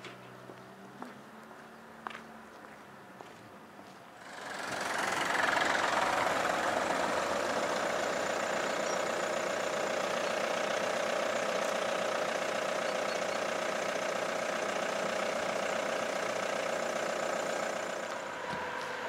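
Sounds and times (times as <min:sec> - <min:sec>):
engine idling: 0:04.2 - 0:19.0.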